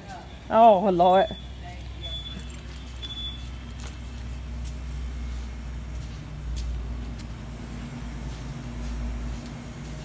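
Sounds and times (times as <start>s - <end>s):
shop interior hum: 0.0s - 10.0s
short high beep: 1.2s - 3.5s.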